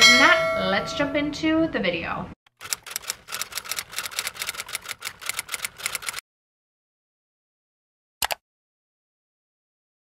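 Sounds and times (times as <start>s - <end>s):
keyboard typing clicks: 2.5s - 6.2s, 8.2s - 8.4s.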